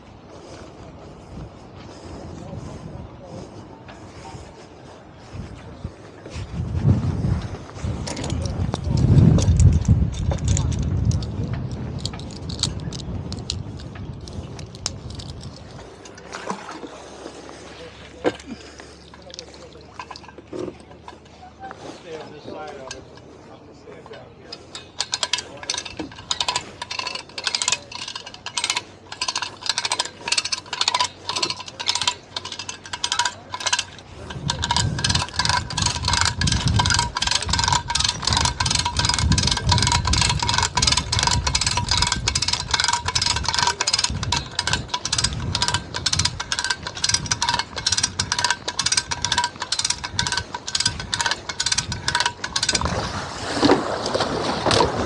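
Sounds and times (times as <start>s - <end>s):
ratchet clicking: 12.0s - 16.2s, 24.5s - 53.0s
boat hull splashing into water: 52.9s - 55.0s.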